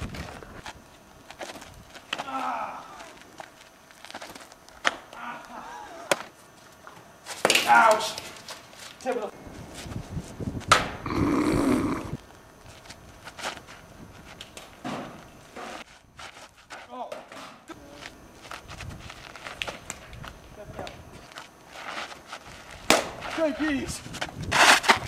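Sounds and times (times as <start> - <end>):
footsteps on dirt: 0.0 - 5.1, 6.2 - 17.1, 17.7 - 25.0
plastic bat hitting plastic ball: 22.9 - 23.1.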